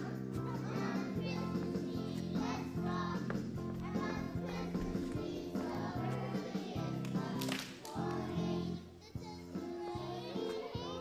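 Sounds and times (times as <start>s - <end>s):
music playing: 0.0s - 11.0s
young children singing: 0.0s - 11.0s.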